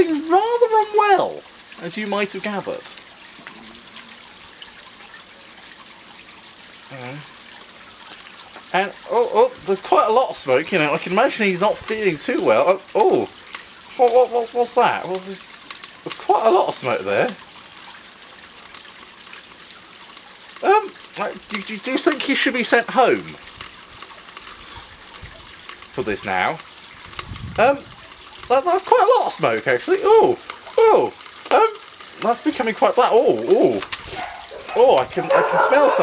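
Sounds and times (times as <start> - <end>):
chemical reaction hissing and crackling: 0.0 - 36.0
man saying um: 6.9 - 7.3.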